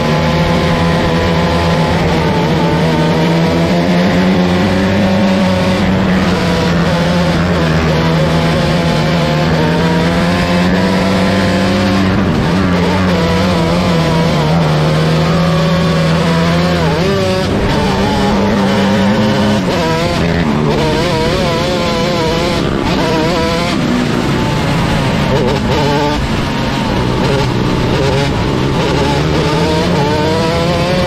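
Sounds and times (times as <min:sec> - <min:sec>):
race car engine: 0:00.0 - 0:31.0.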